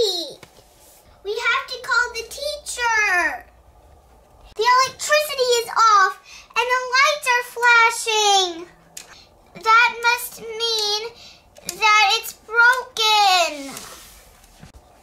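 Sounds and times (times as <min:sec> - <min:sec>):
child singing wordless tune: 0:04.6 - 0:08.7, 0:09.6 - 0:13.8.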